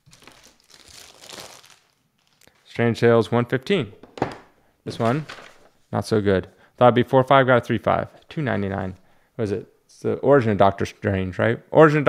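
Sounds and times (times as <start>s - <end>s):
plastic crinkling: 0.0s - 2.7s, 5.0s - 5.7s.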